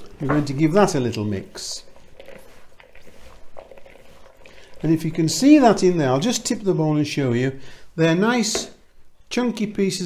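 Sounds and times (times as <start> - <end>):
man speaking: 0.2 - 1.9, 4.8 - 10.0.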